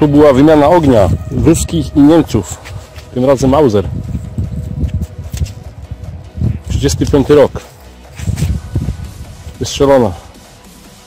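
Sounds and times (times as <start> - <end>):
gloves rubbing a cartridge case: 7.0 - 11.0.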